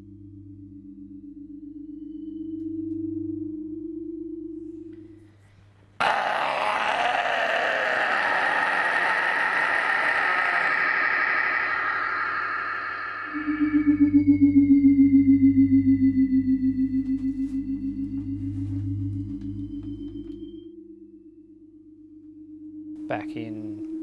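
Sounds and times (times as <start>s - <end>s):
low droning tone: 0.0s - 5.8s, 9.4s - 24.0s
harsh vocal scream: 6.0s - 13.9s.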